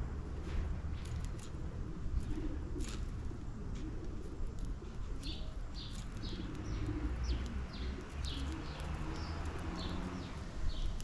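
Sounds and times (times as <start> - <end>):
sparrows chirping: 0.0 - 11.0
pigeons cooing: 1.0 - 11.0.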